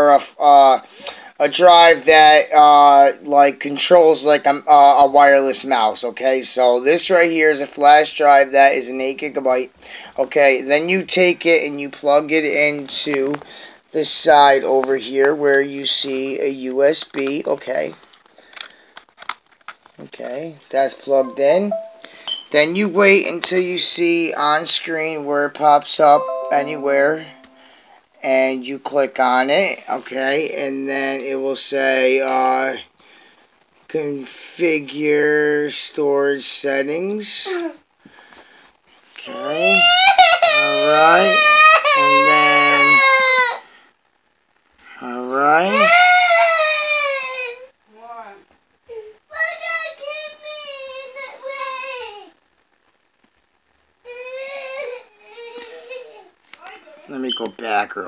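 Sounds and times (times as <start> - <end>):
child vocal sound: 39.2 - 43.6
young child wailing: 39.3 - 43.6, 45.7 - 47.7, 54.1 - 57.0.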